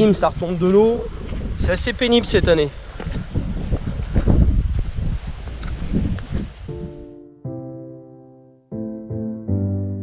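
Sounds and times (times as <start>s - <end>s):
wind buffeting microphone: 0.0s - 7.1s
footsteps on grass: 0.0s - 7.2s
piano music: 6.7s - 10.0s.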